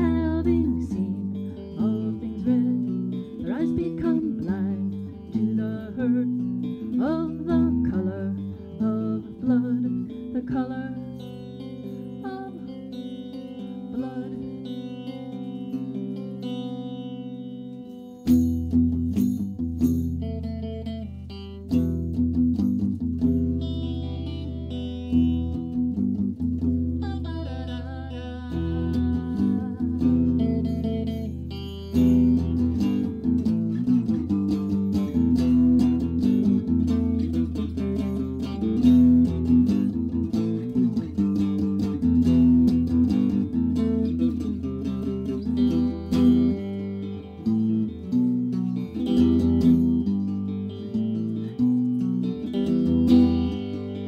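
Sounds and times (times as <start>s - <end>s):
woman singing: 0.0s - 15.2s, 27.0s - 33.3s
electric guitar chords: 0.0s - 54.0s.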